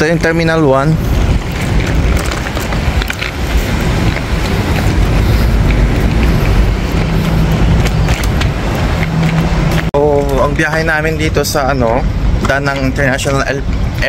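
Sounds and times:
passing cars: 0.0 - 14.0.

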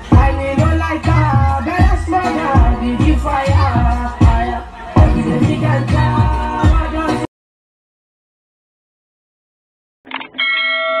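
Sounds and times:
notification bell ringing: 10.4 - 11.0.

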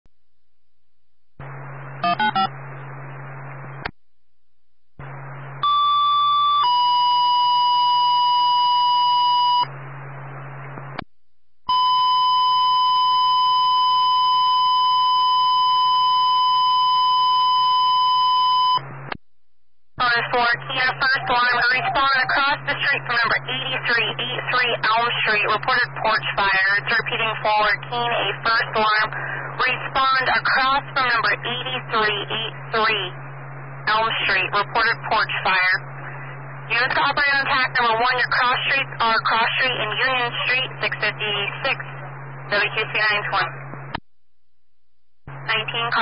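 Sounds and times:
long steady alert tone: 2.0 - 2.6, 5.6 - 9.7
dispatcher speaking over radio: 20.0 - 33.2, 33.9 - 43.6, 45.5 - 46.0
radio hiss: 20.0 - 33.2, 33.9 - 44.0, 45.3 - 46.0.

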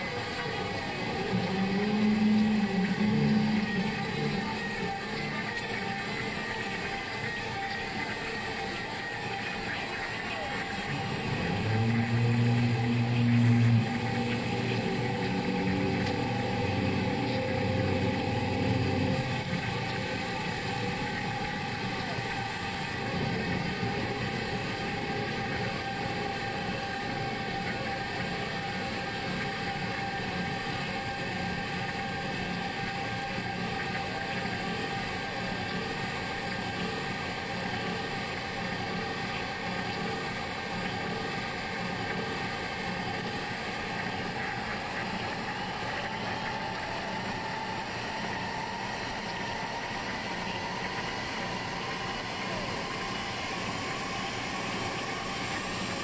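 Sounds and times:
distorted electric guitar: 10.6 - 22.3.

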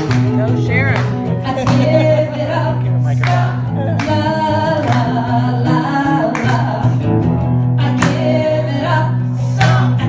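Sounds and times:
strummed acoustic guitar: 0.0 - 10.0
woman singing: 0.0 - 10.0.

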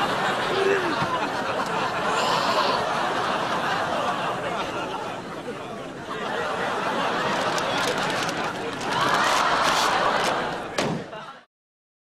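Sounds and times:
people laughing: 0.0 - 11.5
paper bag bursting: 7.4 - 10.4.

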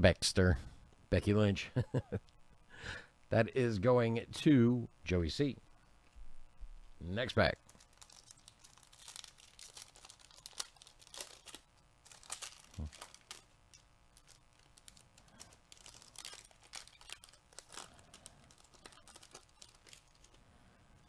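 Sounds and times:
foil wrapper crinkling and tearing: 7.4 - 20.4.

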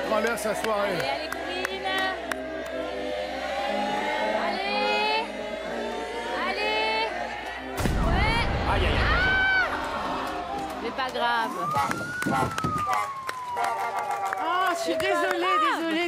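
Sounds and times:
music: 0.0 - 16.0
audience cheering and shouting: 7.5 - 16.0.

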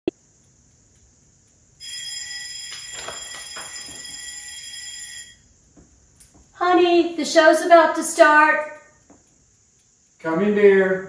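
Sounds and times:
alarm clock ringing: 1.8 - 5.4.

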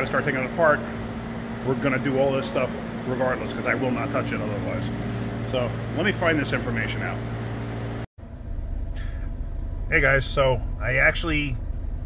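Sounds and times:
low background hum: 0.0 - 12.0
vehicle cabin rumble: 0.0 - 12.0.

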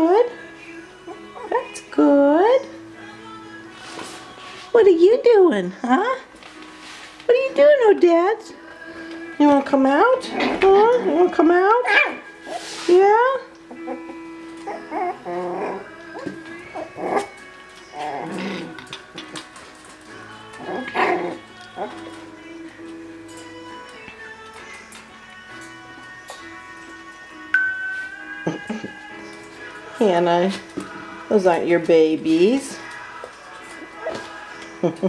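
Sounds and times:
background music: 0.0 - 35.0
puppies yipping and barking: 10.2 - 12.8, 13.6 - 22.3.

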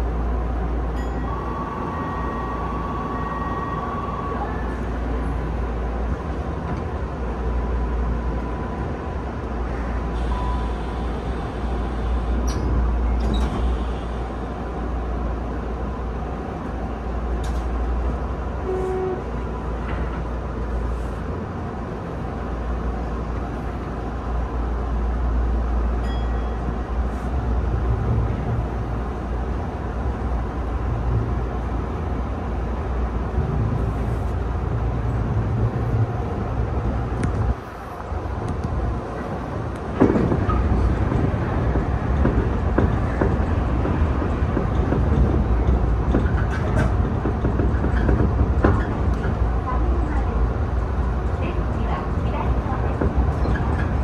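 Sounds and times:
train wheels rumbling on rail: 0.0 - 54.0.

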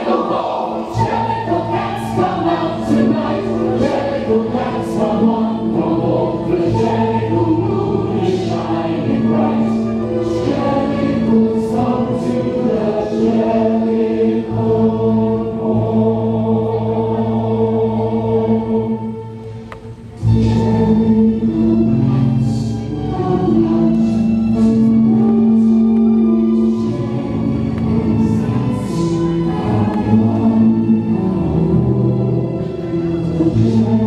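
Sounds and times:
choir singing with instruments: 0.0 - 34.0.

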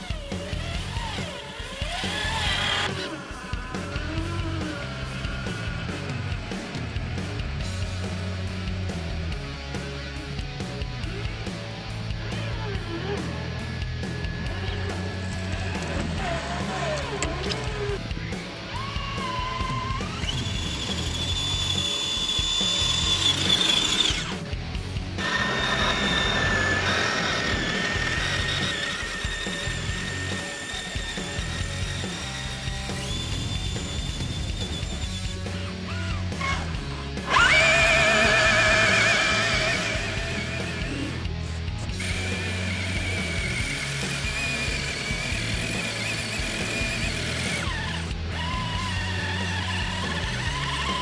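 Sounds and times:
electric motor whine: 0.0 - 6.8, 13.5 - 24.5, 25.2 - 35.7, 37.2 - 51.0
background music with steady beat: 0.0 - 51.0.

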